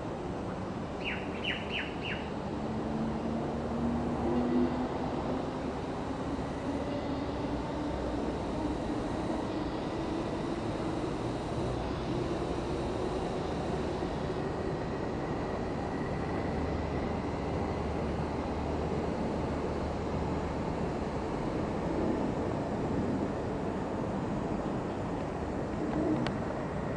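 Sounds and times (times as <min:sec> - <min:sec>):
faint low hum rising in pitch: 0:00.0 - 0:26.9
steady background rumble: 0:00.0 - 0:26.9.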